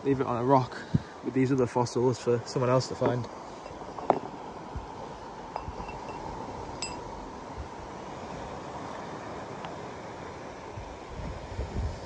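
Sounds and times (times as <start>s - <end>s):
sea noise: 0.0s - 12.0s
steady wind: 0.0s - 12.0s.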